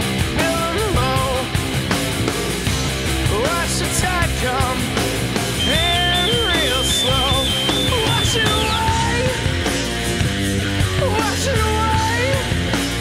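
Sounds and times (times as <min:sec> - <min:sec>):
rock song with electric guitar: 0:00.0 - 0:13.0.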